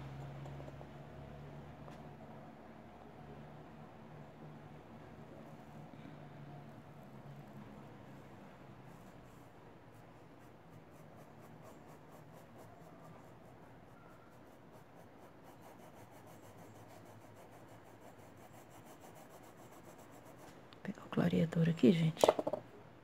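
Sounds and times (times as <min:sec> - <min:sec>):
paintbrush scratching on fabric: 0:08.8 - 0:20.6.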